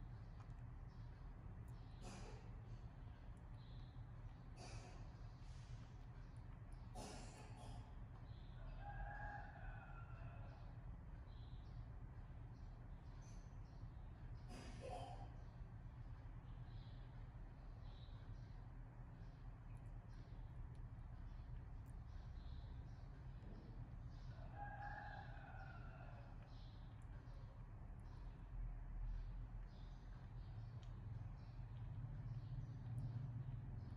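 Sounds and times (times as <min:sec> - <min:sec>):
steady low hum: 0:00.0 - 0:08.8, 0:10.5 - 0:33.9.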